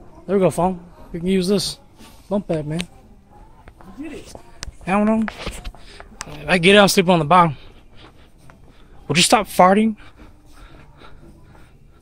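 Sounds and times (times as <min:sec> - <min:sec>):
faint store background hum: 0:00.0 - 0:12.0.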